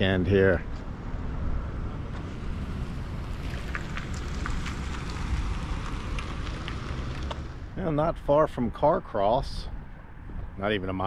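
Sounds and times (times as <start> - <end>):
wind on microphone: 9.6 - 10.6.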